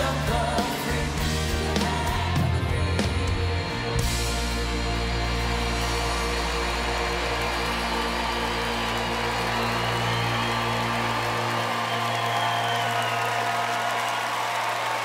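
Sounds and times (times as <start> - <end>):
audience applause and cheering: 0.0 - 15.0.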